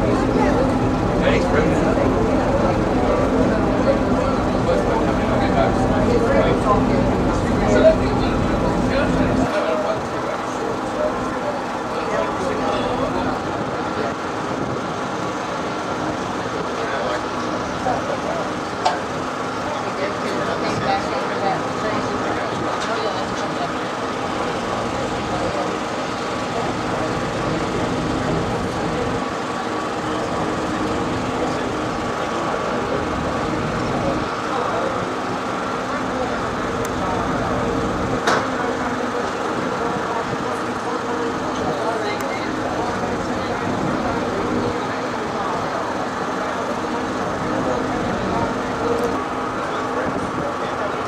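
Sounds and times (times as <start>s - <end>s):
boat engine humming: 0.0s - 51.0s.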